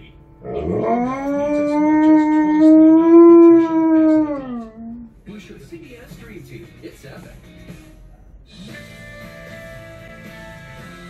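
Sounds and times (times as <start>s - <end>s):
dog howling: 0.4s - 5.1s.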